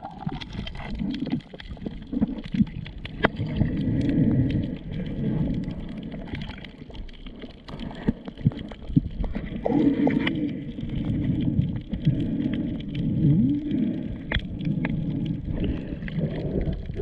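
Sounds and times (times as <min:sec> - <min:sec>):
water gurgling underwater: 0:00.0 - 0:17.0.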